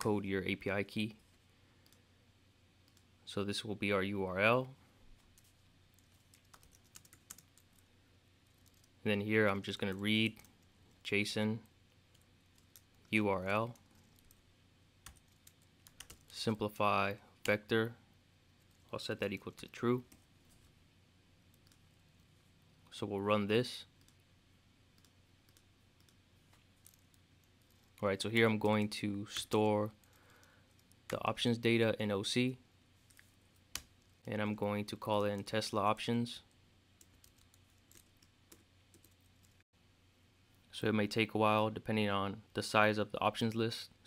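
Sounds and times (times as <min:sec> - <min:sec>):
faint computer keyboard keystrokes: 0:05.2 - 0:08.9, 0:15.0 - 0:16.4, 0:25.0 - 0:28.0, 0:37.0 - 0:39.6.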